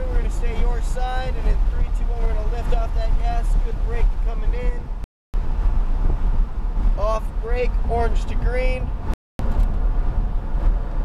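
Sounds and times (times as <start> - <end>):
man speaking: 0.0 - 5.0, 7.0 - 8.9
car engine rumbling: 0.0 - 11.0
road noise inside car: 0.0 - 11.0.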